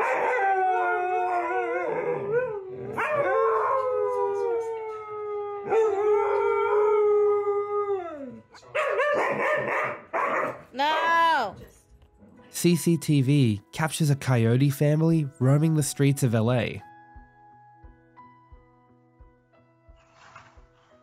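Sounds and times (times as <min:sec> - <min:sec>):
dogs howling: 0:00.0 - 0:11.1.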